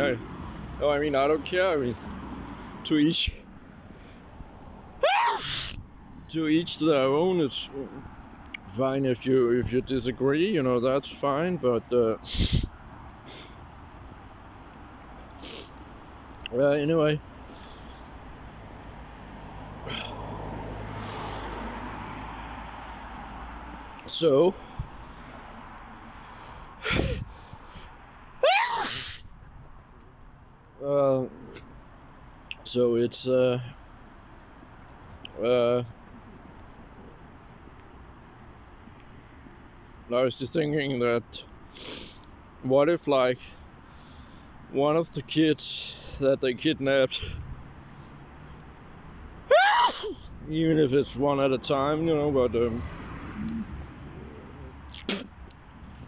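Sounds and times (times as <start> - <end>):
man sneezing: 26.8 - 27.2, 49.5 - 50.2, 55.0 - 55.4.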